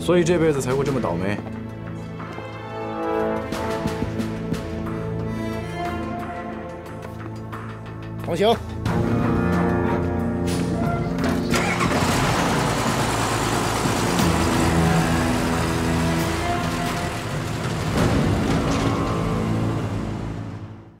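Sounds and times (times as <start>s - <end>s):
orchestral music: 0.2s - 21.0s
truck engine running: 10.0s - 20.9s.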